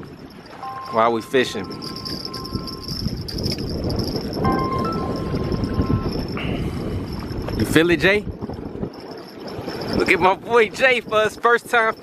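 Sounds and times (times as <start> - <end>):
wind rumbling on microphone: 0.0 - 12.0
phone ringtone beeping: 0.6 - 6.5.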